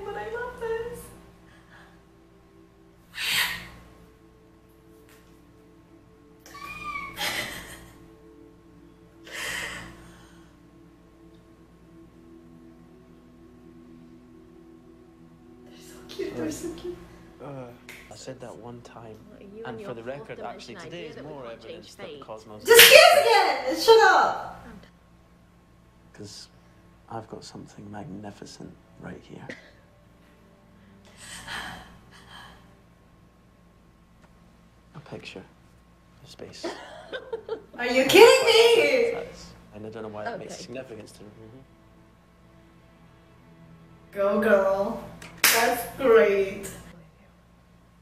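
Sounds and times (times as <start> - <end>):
faint background music: 0.0 - 48.0
woman squealing: 6.4 - 7.9
woman laughing: 6.5 - 8.1, 36.7 - 37.8.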